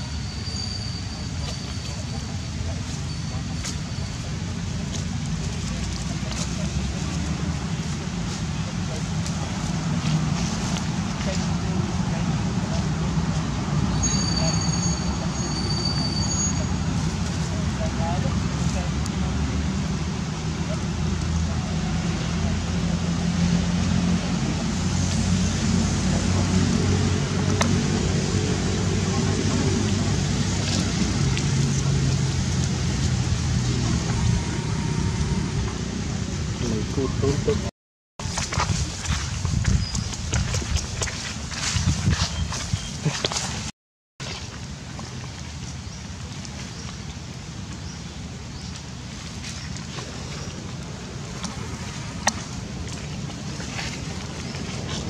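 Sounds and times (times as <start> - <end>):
road traffic rumble: 0.0 - 55.0.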